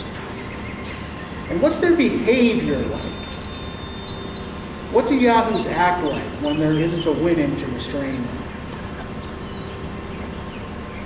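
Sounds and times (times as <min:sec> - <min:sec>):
man speaking: 0:01.5 - 0:03.2, 0:04.9 - 0:08.4
faint high chirp: 0:02.8 - 0:07.2.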